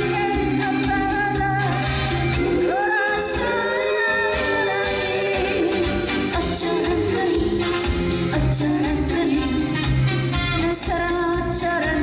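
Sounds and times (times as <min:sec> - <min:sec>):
instrumental accompaniment: 0:00.0 - 0:12.0
woman singing into a microphone: 0:00.0 - 0:12.0.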